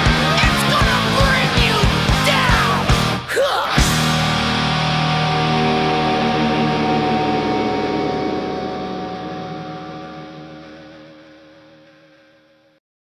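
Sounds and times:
electric guitar chord ringing: 0:04.0 - 0:12.8.

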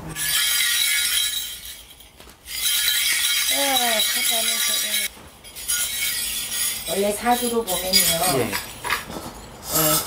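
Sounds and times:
small brass bells jingling: 0:00.2 - 0:10.0.

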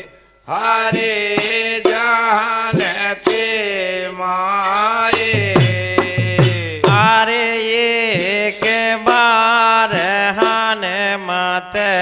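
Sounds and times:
man singing long held notes: 0:00.0 - 0:12.0
drum strokes: 0:05.1 - 0:07.3.

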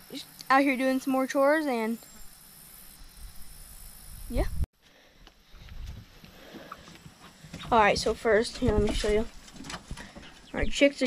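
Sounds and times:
summer insects droning: 0:00.0 - 0:08.6.

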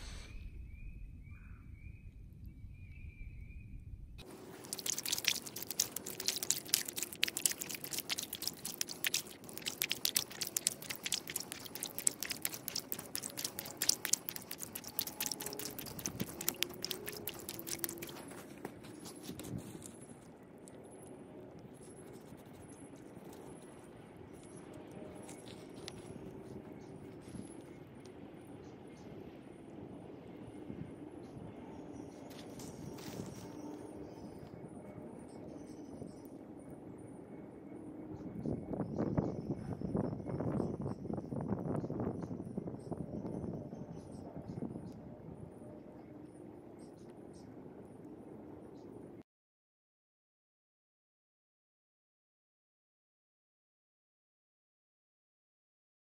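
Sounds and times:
faint outdoor background: 0:00.0 - 0:49.2
hand stirring water splashing: 0:04.2 - 0:19.6
scratchy crackly noise: 0:04.2 - 0:20.8.

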